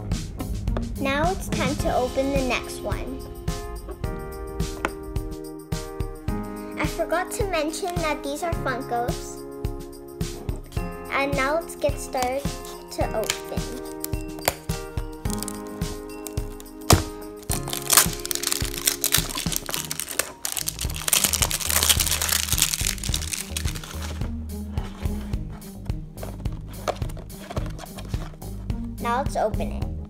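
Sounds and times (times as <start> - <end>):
background music: 0.0 - 30.0
plastic shrink-wrap crinkling and tearing: 12.2 - 24.3, 26.3 - 28.4.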